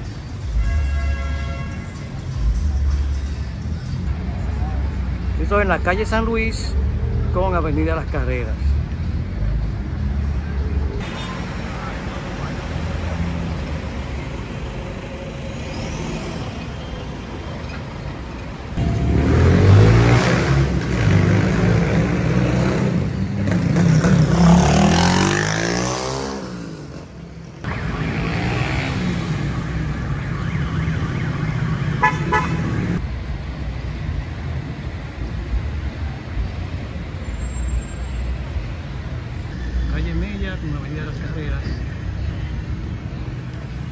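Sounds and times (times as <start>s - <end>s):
low rumble of road traffic: 0.0s - 43.9s
passing vehicle engine: 8.5s - 30.6s.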